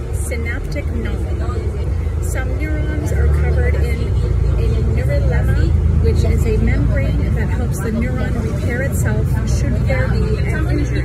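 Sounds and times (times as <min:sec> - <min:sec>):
bus engine and road rumble: 0:00.0 - 0:11.0
woman talking: 0:00.0 - 0:11.0.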